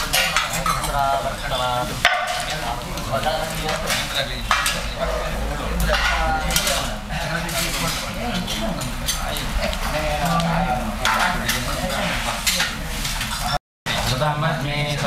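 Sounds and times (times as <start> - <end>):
fire crackling and sizzling: 0.0 - 13.5
metal vessels clinking: 0.0 - 13.6.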